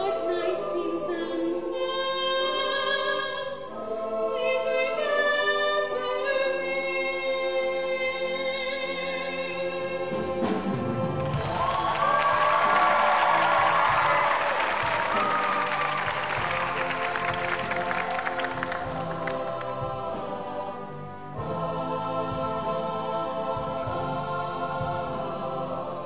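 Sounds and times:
choir singing with instruments: 0.0 - 26.0
audience applauding: 11.2 - 19.9.

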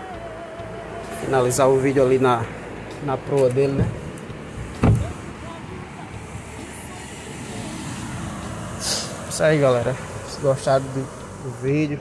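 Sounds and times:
outdoor background rush: 0.0 - 12.0.

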